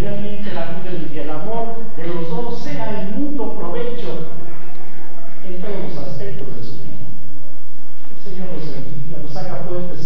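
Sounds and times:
man speaking into a microphone: 0:00.0 - 0:04.4, 0:05.4 - 0:07.0, 0:08.2 - 0:10.0.

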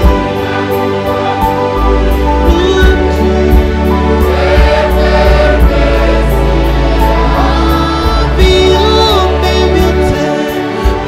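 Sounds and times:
band with steady drum beat: 0:00.0 - 0:11.0
many voices singing gospel: 0:00.0 - 0:11.0.

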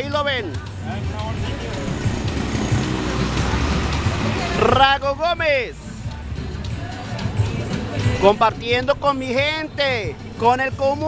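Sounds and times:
truck engine rumble: 0:00.0 - 0:10.4
street traffic: 0:00.0 - 0:11.0.

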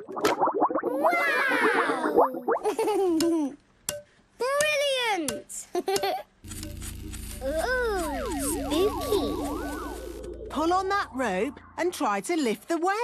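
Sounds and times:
low hum: 0:06.4 - 0:12.3
music with swooping gliding tones: 0:06.7 - 0:11.8.

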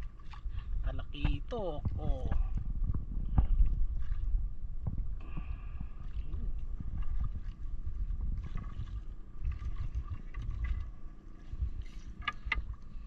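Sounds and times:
water lapping against hull: 0:00.0 - 0:13.0
wind rumble on microphone: 0:00.0 - 0:13.0.

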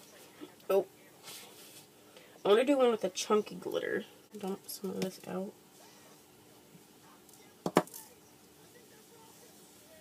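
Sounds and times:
sharp taps on plastic container: 0:07.6 - 0:08.0.

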